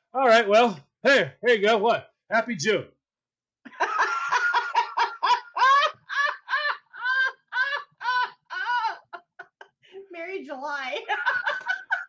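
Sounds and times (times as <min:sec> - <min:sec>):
high-pitched hooting laughter: 0:03.8 - 0:09.6.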